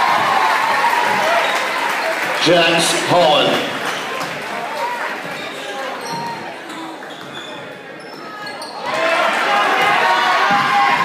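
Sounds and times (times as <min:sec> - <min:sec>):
crowd cheering: 0:00.0 - 0:07.1, 0:08.8 - 0:11.0
spectators' voices: 0:00.0 - 0:11.0
sneaker squeaks: 0:05.2 - 0:09.0.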